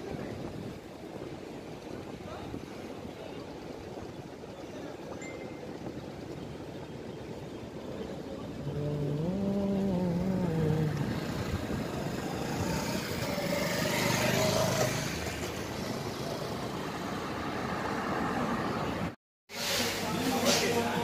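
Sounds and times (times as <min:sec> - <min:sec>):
cars driving past: 0:10.8 - 0:20.9.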